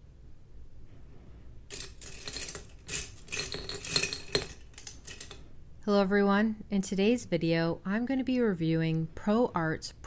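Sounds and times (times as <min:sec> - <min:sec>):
brush handles clinking in glass jar: 0:01.7 - 0:05.4.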